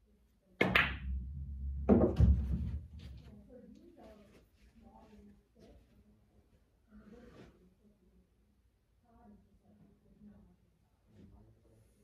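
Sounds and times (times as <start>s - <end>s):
cue striking ball: 0.6s - 1.2s.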